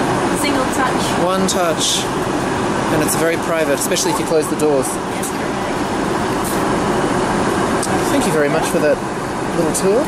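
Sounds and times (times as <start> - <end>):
airplane cabin noise: 0.0 - 10.0.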